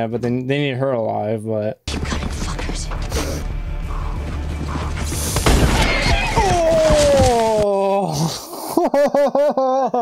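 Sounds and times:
low music drone: 1.9 - 5.8.

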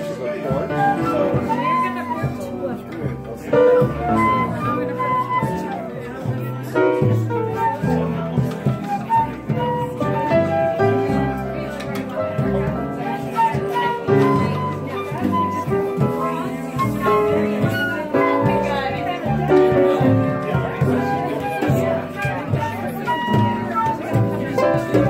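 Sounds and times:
acoustic guitar: 0.0 - 25.0
fiddle: 0.0 - 25.0
flute melody: 0.0 - 25.0
upright bass: 0.0 - 25.0.

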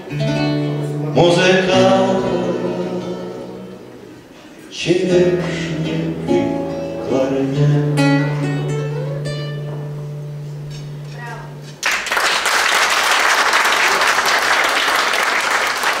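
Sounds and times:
acoustic guitar chord ringing: 0.0 - 11.8
audience applause: 11.8 - 16.0.

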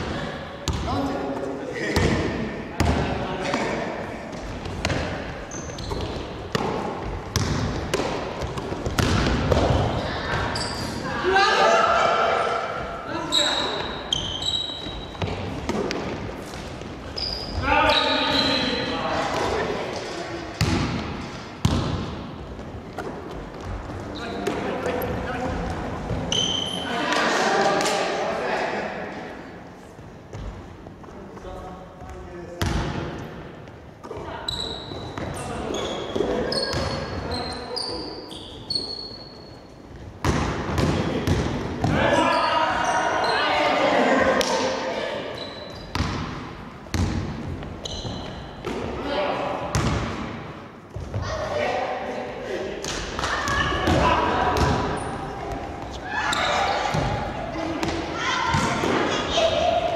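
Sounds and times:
sneakers squeaking on floor: 1.9 - 11.1, 12.7 - 19.6, 20.6 - 27.2, 34.0 - 43.8, 45.2 - 49.0, 53.3 - 59.7
basketball bouncing on wooden floor: 49.7 - 50.1.

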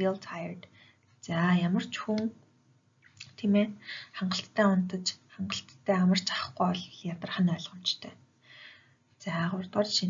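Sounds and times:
person talking: 0.0 - 0.6, 1.2 - 2.4, 3.1 - 8.2, 9.2 - 10.0.

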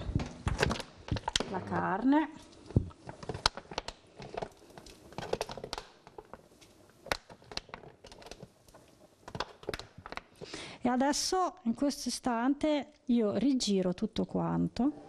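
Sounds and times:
plastic tub crinkling: 0.4 - 10.5.

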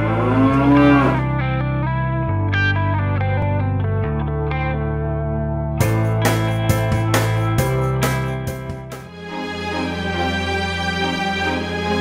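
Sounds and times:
cow mooing: 0.0 - 1.3
guitar music: 0.0 - 10.2.

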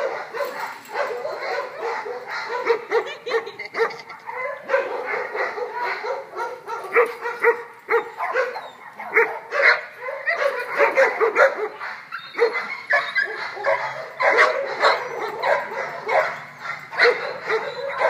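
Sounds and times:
dogs barking and yipping: 0.0 - 18.0.

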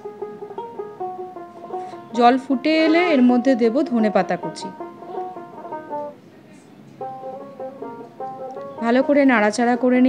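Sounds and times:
instrumental music with plucked strings: 0.0 - 10.0.

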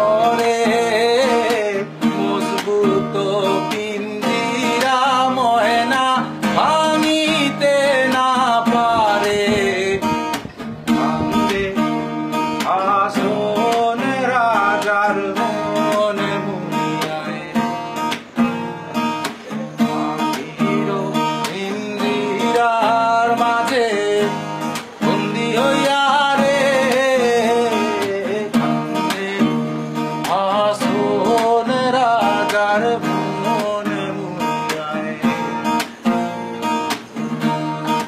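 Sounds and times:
acoustic guitar strumming: 0.0 - 38.0
man singing: 0.0 - 38.0.

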